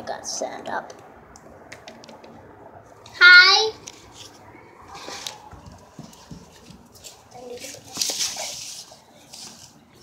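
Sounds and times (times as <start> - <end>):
child's voice: 3.2 - 3.8, 7.3 - 8.6.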